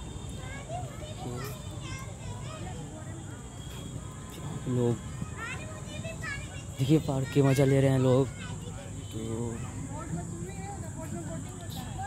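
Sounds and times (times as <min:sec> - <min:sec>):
distant children shouting: 0:00.0 - 0:12.0.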